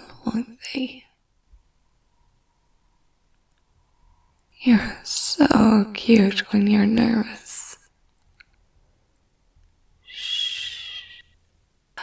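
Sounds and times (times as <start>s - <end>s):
breathy exhale with whistle: 10.1s - 11.4s.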